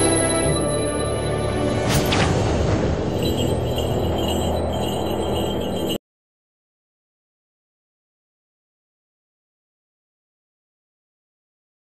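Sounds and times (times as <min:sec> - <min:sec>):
dark dramatic music: 0:00.0 - 0:06.0.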